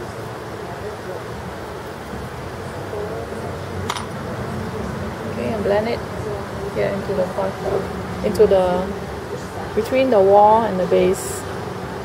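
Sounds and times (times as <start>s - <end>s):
faint voices: 0.0s - 12.0s
steady room hum: 0.0s - 12.0s.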